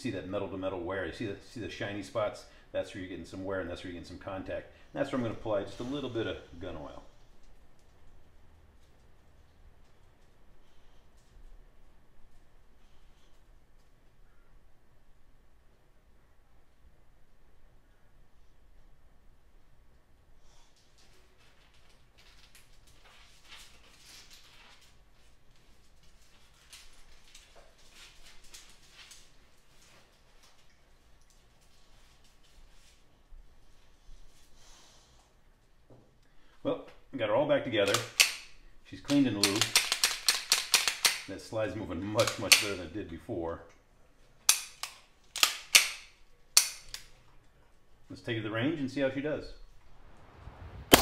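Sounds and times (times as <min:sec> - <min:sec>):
metal parts clicking: 0:37.8 - 0:41.3
pistol slide racking: 0:37.8 - 0:41.3, 0:42.2 - 0:42.8, 0:44.5 - 0:47.1.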